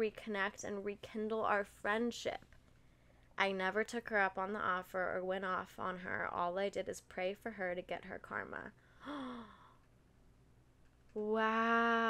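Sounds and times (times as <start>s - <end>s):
woman gasping wow: 9.0s - 9.7s.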